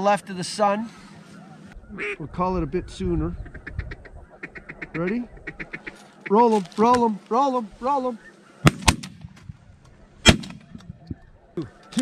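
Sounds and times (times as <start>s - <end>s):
shotgun blasts: 8.6s - 9.4s, 10.2s - 10.8s.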